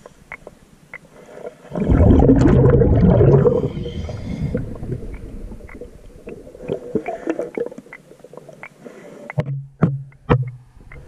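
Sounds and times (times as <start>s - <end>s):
faint clicks: 0.0s - 1.1s, 5.0s - 11.0s
underwater exhaled bubbles: 1.6s - 8.6s.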